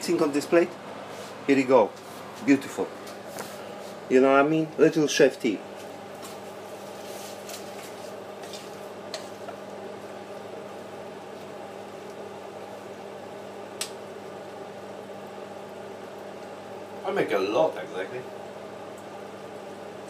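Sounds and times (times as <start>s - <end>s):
mechanical motor hum: 0.0s - 20.0s.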